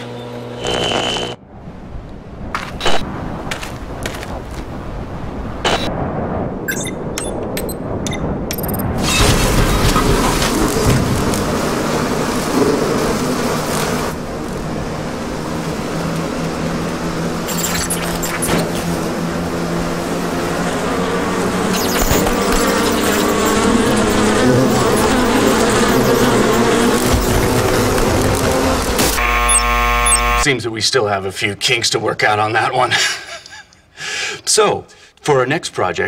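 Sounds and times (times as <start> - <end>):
bees swarm buzzing: 10.4 - 30.5.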